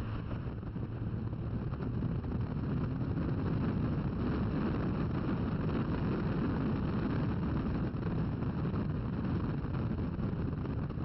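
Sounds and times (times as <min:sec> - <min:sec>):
car engine running hard: 0:00.0 - 0:11.0
wind buffeting microphone: 0:00.0 - 0:11.0.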